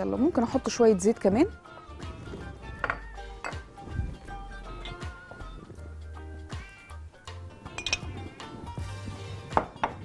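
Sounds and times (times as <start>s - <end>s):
background music: 0.0s - 10.0s
glass jar clinking: 2.7s - 3.7s, 7.7s - 8.3s.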